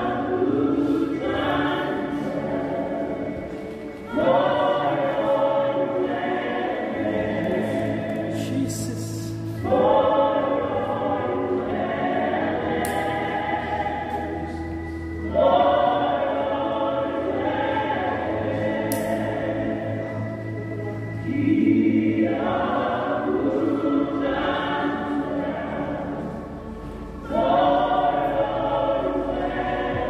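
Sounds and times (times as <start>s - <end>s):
choir singing slowly: 0.0s - 30.0s.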